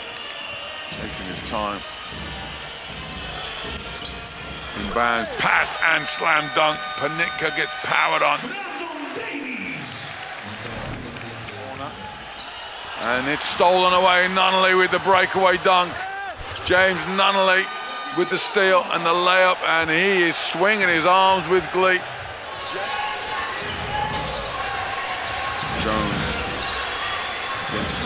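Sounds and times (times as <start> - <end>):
basketball play on court: 0.0 - 28.0
crowd noise: 0.0 - 28.0.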